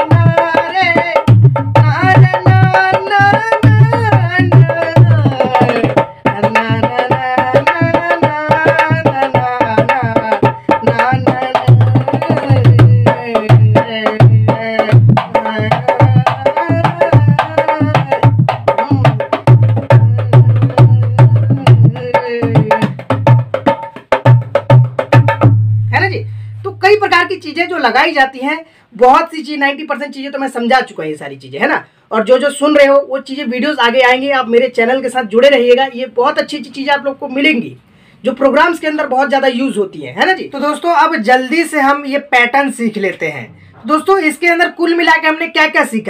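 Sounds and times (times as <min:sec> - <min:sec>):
man humming and singing: 0:00.0 - 0:24.0
hand drum rhythm: 0:00.0 - 0:26.2.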